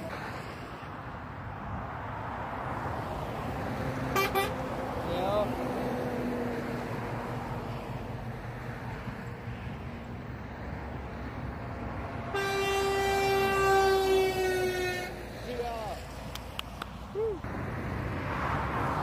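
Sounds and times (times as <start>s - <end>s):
motorway traffic passing: 0.0s - 19.0s
truck air horn blowing: 4.1s - 4.6s, 12.3s - 15.3s.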